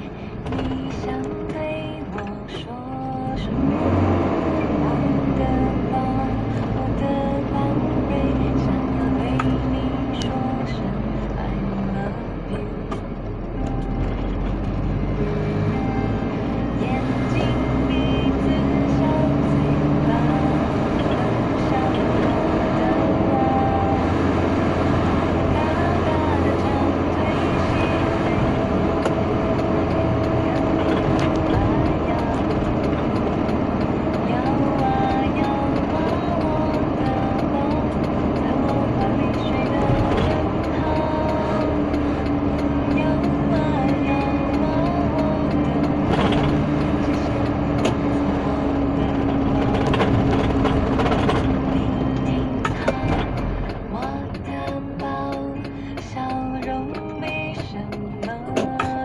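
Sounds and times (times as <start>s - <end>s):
car engine and tyre rumble: 0.0s - 59.0s
song on car radio: 0.0s - 59.0s.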